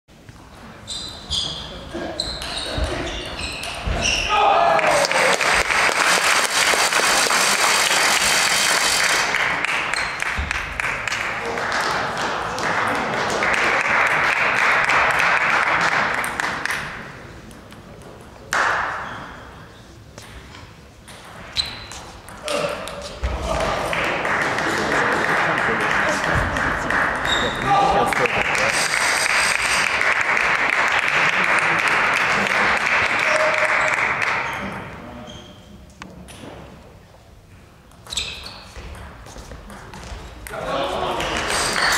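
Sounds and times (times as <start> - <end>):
player shouting: 4.2 - 5.4
crowd cheering and clapping: 4.3 - 16.7, 23.6 - 34.5.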